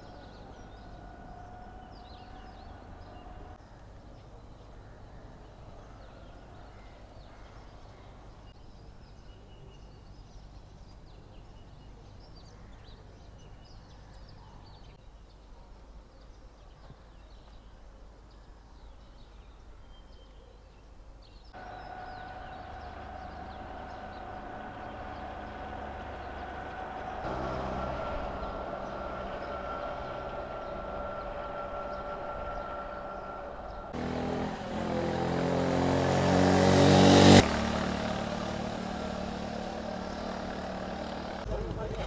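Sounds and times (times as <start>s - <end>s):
vehicle passing close: 0.0s - 3.6s, 21.6s - 42.0s
low engine hum: 21.6s - 42.0s.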